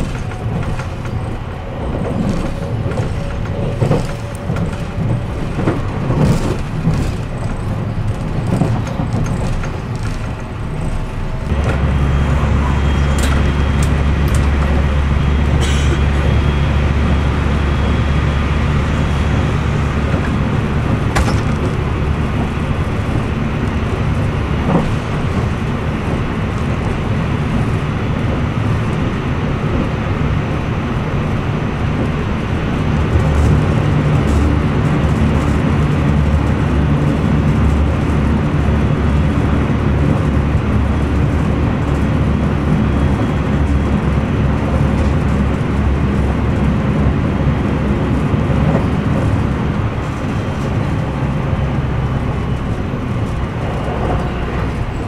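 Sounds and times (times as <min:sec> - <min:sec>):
moving train rumble: 0:00.0 - 0:55.0
passing train alongside: 0:00.0 - 0:55.0.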